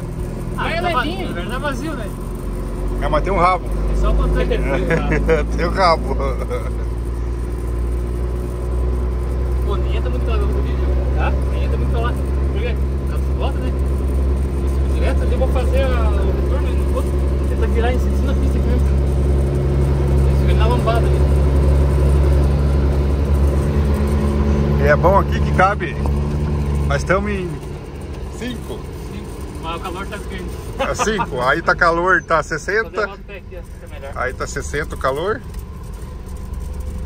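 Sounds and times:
truck diesel engine hum: 0.0s - 37.0s
voices and laughter: 3.9s - 7.4s, 29.4s - 34.2s.

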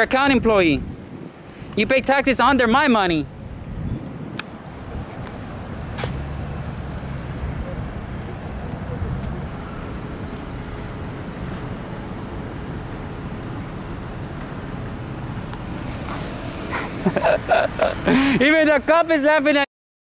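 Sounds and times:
traffic rumble: 0.0s - 19.6s.

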